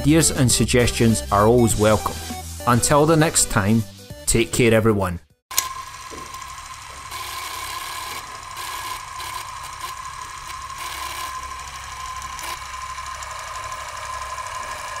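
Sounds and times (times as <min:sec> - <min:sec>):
film projector whirring: 0:05.5 - 0:15.0.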